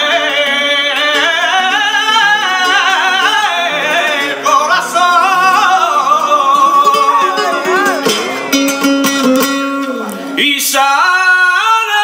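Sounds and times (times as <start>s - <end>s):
plucked guitar: 0.0s - 10.7s
man singing melismatic line: 0.0s - 12.0s.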